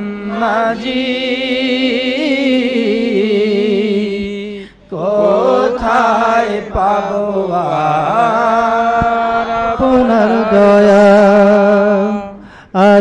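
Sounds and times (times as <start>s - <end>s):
person singing devotional song: 0.0s - 13.0s.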